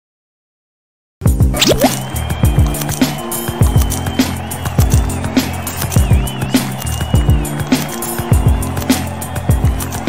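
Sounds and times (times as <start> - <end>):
electronic music with beat: 1.3 - 10.0.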